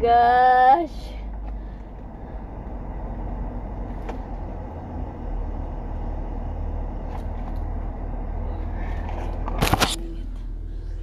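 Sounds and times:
car engine rumble: 0.0 - 11.0
road noise: 0.0 - 11.0.

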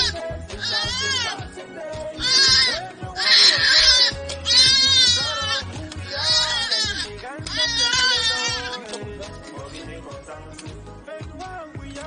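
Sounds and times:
goat bleating: 0.0 - 9.0
background music: 0.0 - 12.0.

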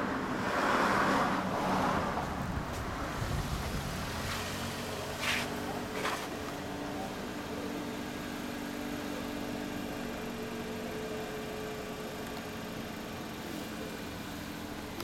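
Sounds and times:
motorcycle engine idling: 4.8 - 15.0.

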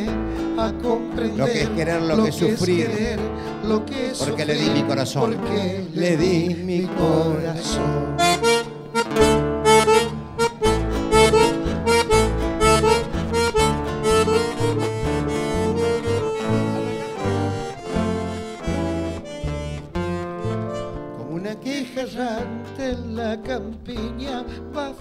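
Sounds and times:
plucked double bass: 0.0 - 21.6
acoustic guitar: 0.0 - 25.0
button accordion melody: 8.0 - 21.2.

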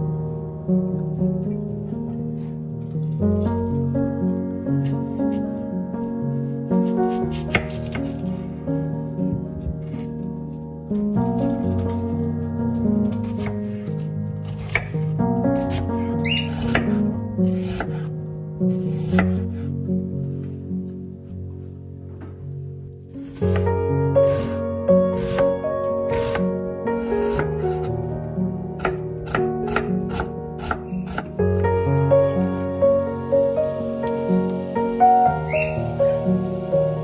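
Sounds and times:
background music: 0.0 - 37.0
knife chopping onion on wooden board: 14.5 - 15.0, 16.4 - 18.1, 19.0 - 19.4, 28.8 - 31.3.

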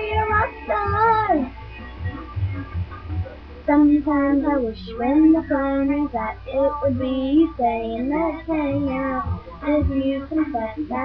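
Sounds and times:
girl singing: 0.0 - 1.6, 3.7 - 11.0
pop backing track with low beat: 0.0 - 6.2.

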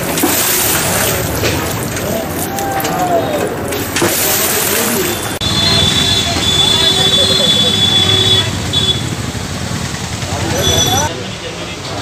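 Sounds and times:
traffic passing: 0.0 - 12.0
people talking indistinctly: 0.5 - 9.0, 10.2 - 12.0.

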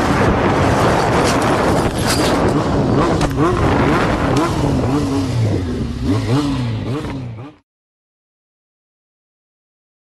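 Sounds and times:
wind rushing over microphone: 0.0 - 7.3
motorcycle engine running: 0.0 - 7.6.

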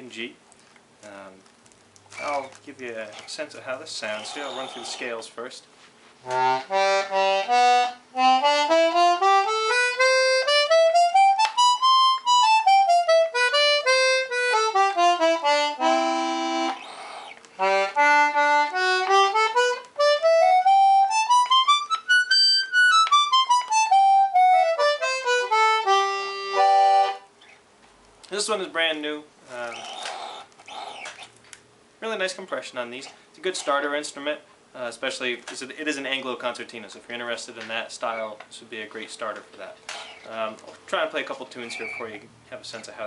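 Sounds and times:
concertina playing scales: 6.2 - 17.0, 17.6 - 27.3.

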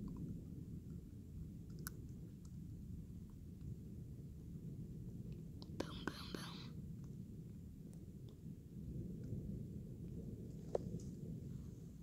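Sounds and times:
steady low rumble: 0.0 - 12.0
person whispering: 5.7 - 6.7.

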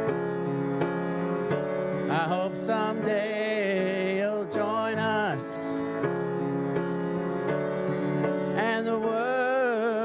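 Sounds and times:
piano playing held chords: 0.0 - 10.0.

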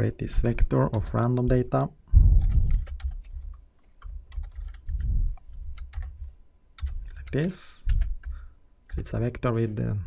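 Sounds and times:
low rumble: 2.1 - 2.7
computer keyboard keys clicking: 2.4 - 6.2, 6.8 - 8.4.

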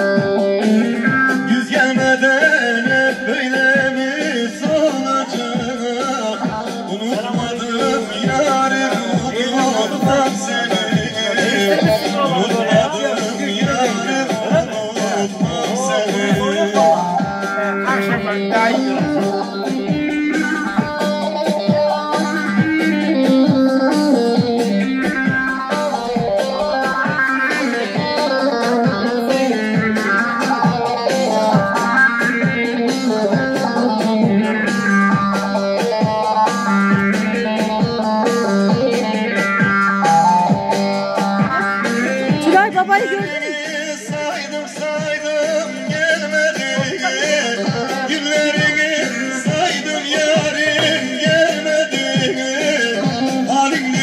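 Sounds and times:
plucked string melody: 50.1 - 51.6.

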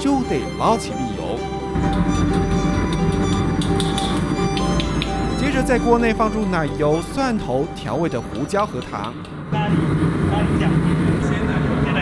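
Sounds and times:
low roar of wok burner: 9.3 - 12.0.

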